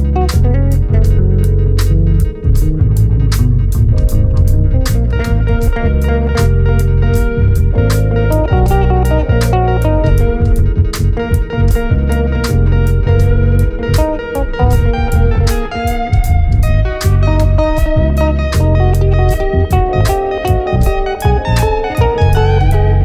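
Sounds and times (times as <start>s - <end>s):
electric bass line: 0.0s - 23.0s
keyboard chords: 0.0s - 23.0s
steady ticking beat: 0.0s - 23.0s.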